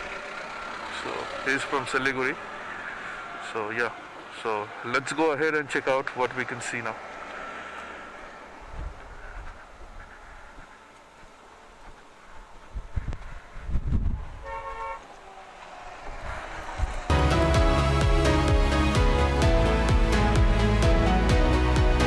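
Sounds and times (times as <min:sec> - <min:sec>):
low rumbles: 0:00.0 - 0:04.8, 0:15.0 - 0:22.0
vehicle horn: 0:14.4 - 0:15.1.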